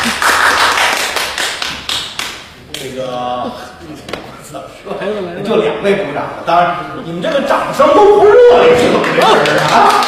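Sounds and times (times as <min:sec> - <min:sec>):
audience clapping: 0:00.0 - 0:02.9, 0:08.8 - 0:10.0.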